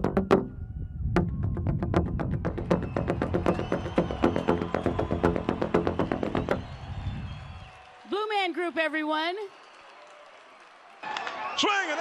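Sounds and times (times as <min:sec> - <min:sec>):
hollow pitched pipe strikes: 0:00.0 - 0:06.6.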